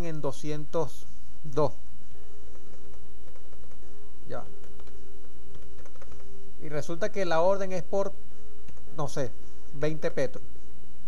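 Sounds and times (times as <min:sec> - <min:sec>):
steady low hum: 0:00.0 - 0:11.0
computer keyboard typing: 0:02.5 - 0:06.4.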